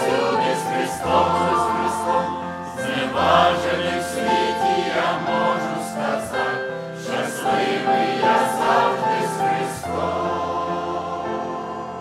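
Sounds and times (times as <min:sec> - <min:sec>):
mixed choir singing a hymn: 0:00.0 - 0:12.0.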